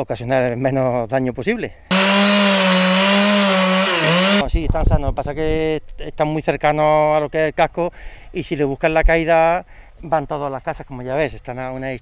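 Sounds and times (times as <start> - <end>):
chainsaw cutting wood: 1.9 - 4.4.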